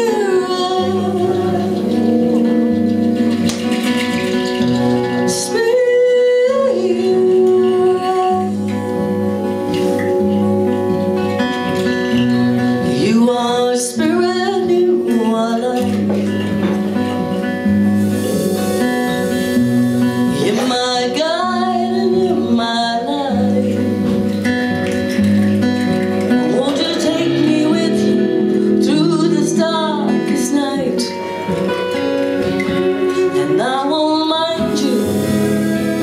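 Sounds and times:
woman singing: 0.0 - 2.7, 5.0 - 9.6, 12.8 - 16.6, 20.3 - 24.3, 26.3 - 36.0
acoustic guitar: 0.0 - 36.0
bass guitar: 0.0 - 36.0
electric guitar: 0.0 - 36.0.

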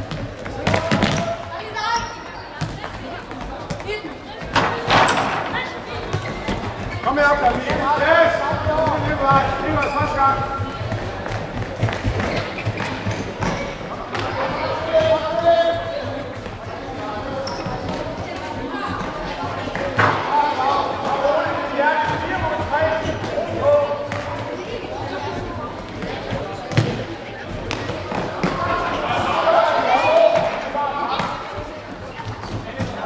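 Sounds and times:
voices echoing in sports hall: 0.0 - 33.0.

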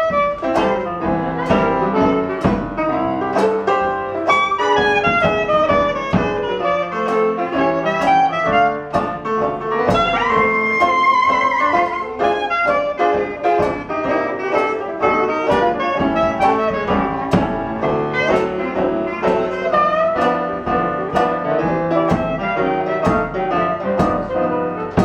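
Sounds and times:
clarinet melody: 0.0 - 25.0
drums: 0.0 - 25.0
piano: 0.0 - 25.0
strummed banjo: 0.0 - 25.0.

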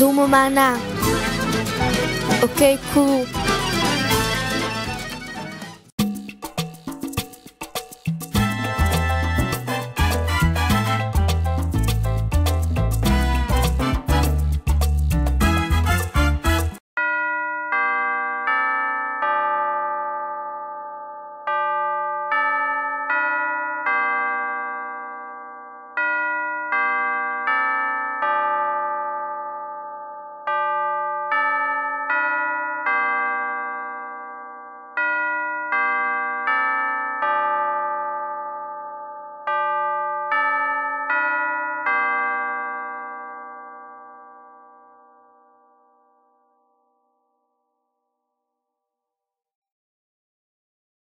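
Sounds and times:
busy music: 0.0 - 7.4, 8.1 - 16.8
bell chimes ringing: 17.0 - 46.7.

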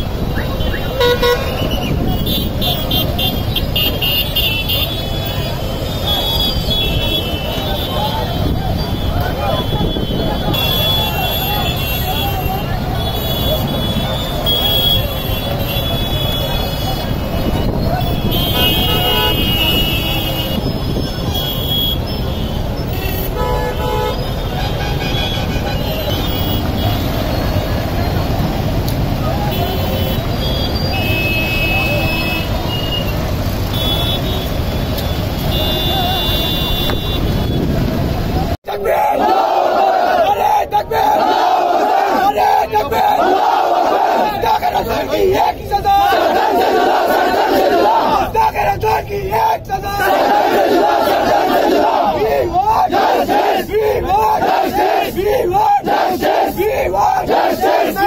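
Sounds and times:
traffic engines running: 0.0 - 58.0
vehicle horns honking: 0.4 - 27.6, 29.4 - 37.8
crowd shouting slogans: 38.3 - 58.0.

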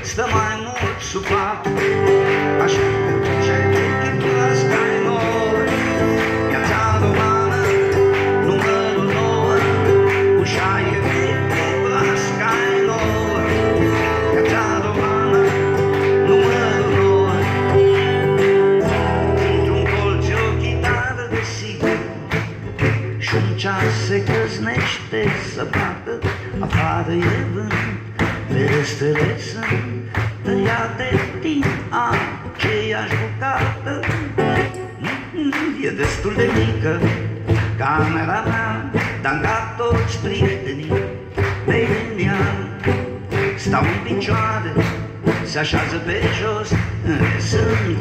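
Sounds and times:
audience clapping along: 0.0 - 48.0
man singing: 0.0 - 48.0
strummed acoustic guitar: 0.0 - 48.0
held accompanying notes: 34.4 - 35.5.

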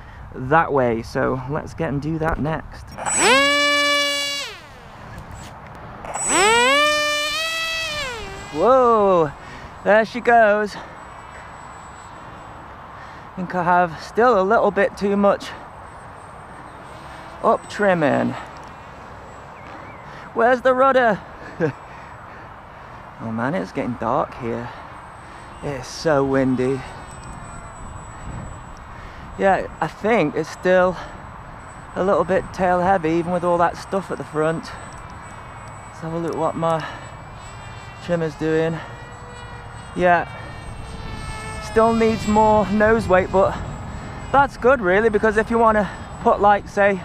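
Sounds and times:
wind noise on microphone: 2.2 - 9.7, 26.8 - 30.3, 38.6 - 47.0
thin high whine: 2.9 - 13.1, 14.8 - 19.8, 23.2 - 47.0
electric motor and propeller whine: 3.0 - 13.0, 15.6 - 20.1, 24.7 - 47.0.

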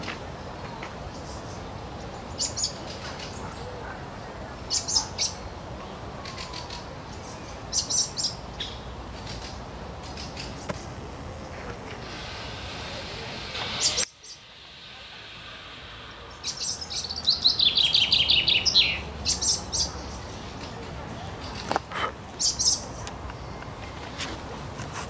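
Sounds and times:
songbird singing: 0.0 - 24.3
high bird chirps: 15.4 - 20.7.

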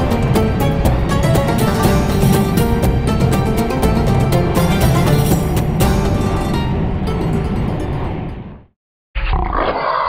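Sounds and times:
background music: 0.0 - 8.7
big cat growl: 9.2 - 10.0.

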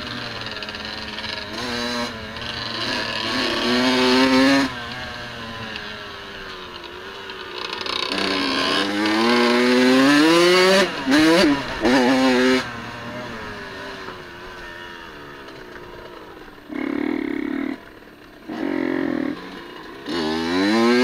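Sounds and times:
dirt bike engine accelerating: 0.0 - 21.0.

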